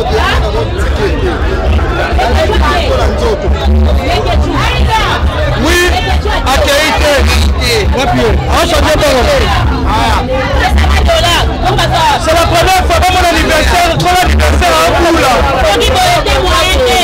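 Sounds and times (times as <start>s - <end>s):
music with heavy bass: 0.0s - 17.0s
party crowd talking: 0.0s - 17.0s.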